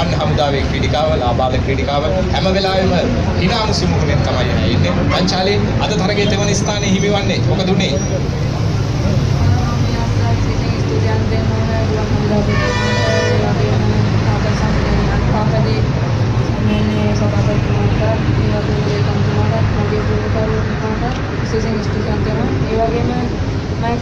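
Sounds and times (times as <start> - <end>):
low traffic rumble: 0.0 - 24.0
vehicle horn: 12.4 - 13.6.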